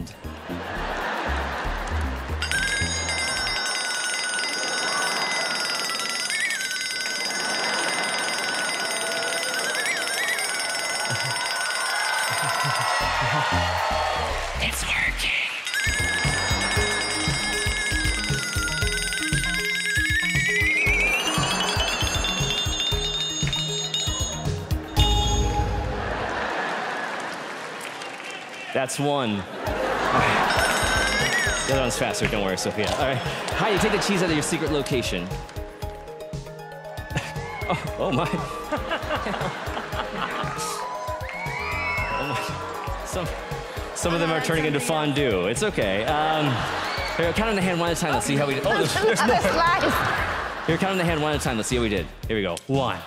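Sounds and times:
audience laughter: 0.3 - 2.4, 7.3 - 9.2, 12.2 - 13.8, 25.8 - 28.0, 29.4 - 31.6, 32.8 - 34.9, 37.1 - 40.8, 46.0 - 51.6
high-pitched tone: 15.7 - 26.1.

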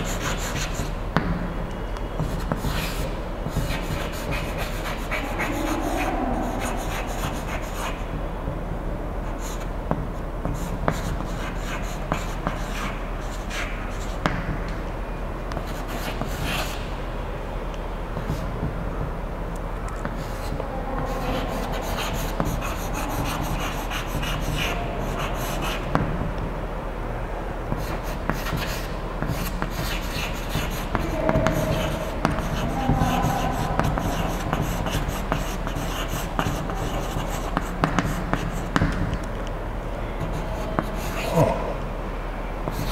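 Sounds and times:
low room hum: 0.0 - 42.9
chalk scratching on blackboard: 28.3 - 38.7.

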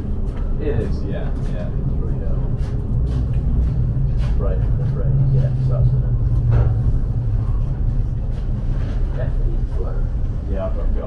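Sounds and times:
train low rumble and drone: 0.0 - 11.0.

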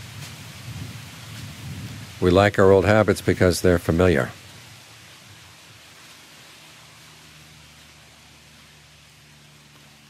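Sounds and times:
faint outdoor hiss: 0.0 - 10.0.

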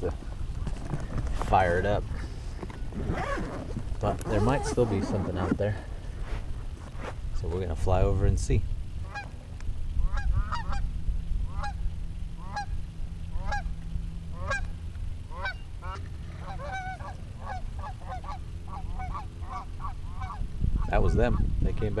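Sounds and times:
geese honking: 9.0 - 9.4, 10.0 - 10.9, 11.5 - 11.8, 12.4 - 12.7, 13.3 - 14.7, 15.3 - 22.0.

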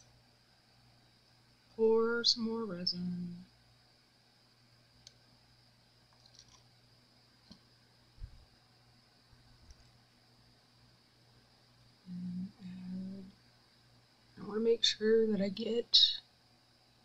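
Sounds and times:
person humming: 12.0 - 13.3.

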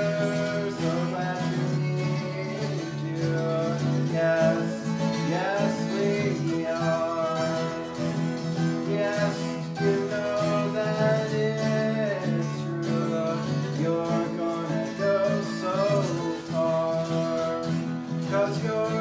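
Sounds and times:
country acoustic guitar music: 0.0 - 19.0.

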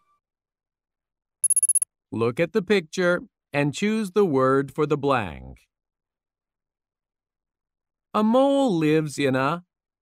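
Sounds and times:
high-pitched ringing bell trill: 1.4 - 1.8.

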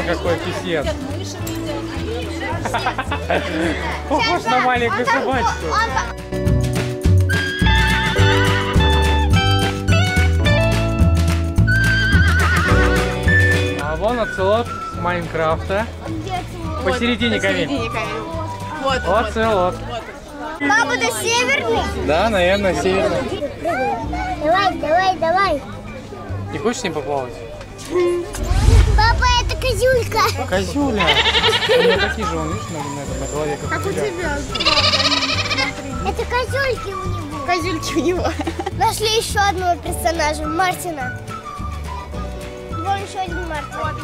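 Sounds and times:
horse whinnying: 12.1 - 12.9, 34.5 - 35.7
goat-like bleat: 31.0 - 32.0, 34.5 - 35.7.

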